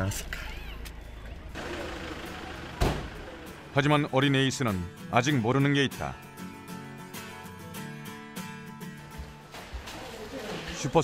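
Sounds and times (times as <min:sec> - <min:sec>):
loud sharp thump: 0:02.8 - 0:03.2.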